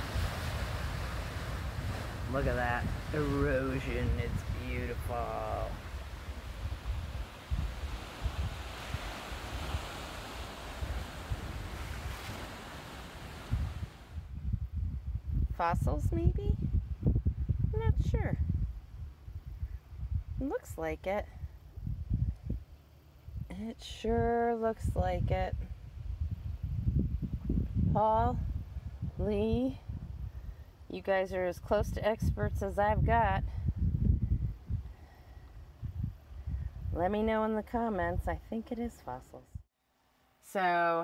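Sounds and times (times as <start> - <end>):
sea waves washing on rocks: 0.0 - 14.2
wind rumbling on microphone: 0.0 - 39.7.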